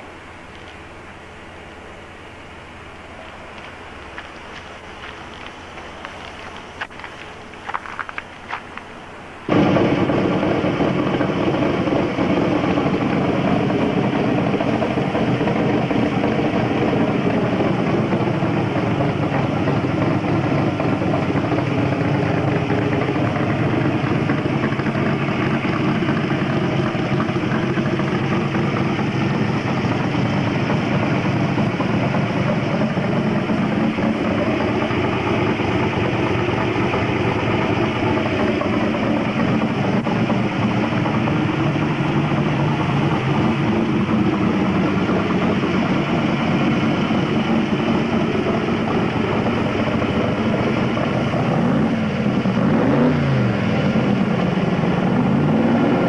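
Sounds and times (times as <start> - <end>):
car engine idling loudly: 0.0 - 56.0.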